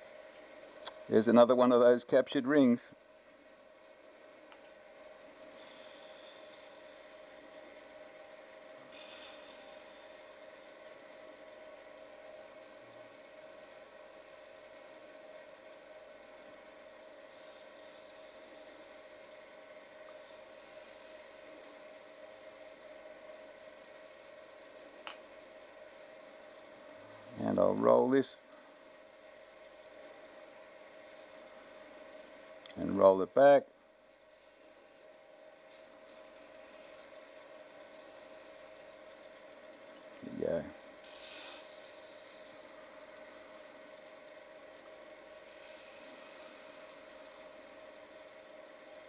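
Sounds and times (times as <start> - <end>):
turning tool hissing: 41.0 - 43.8.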